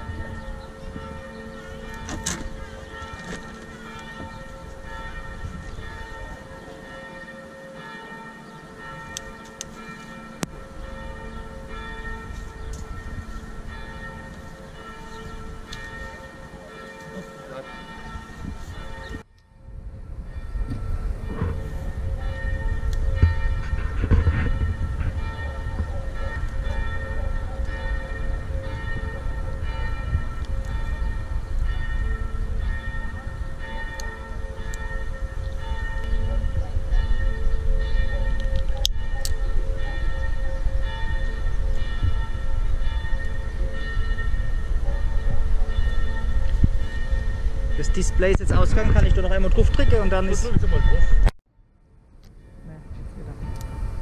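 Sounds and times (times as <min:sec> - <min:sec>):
church bells ringing: 0:00.0 - 0:51.4, 0:52.4 - 0:54.0
low rumble: 0:19.4 - 0:27.5.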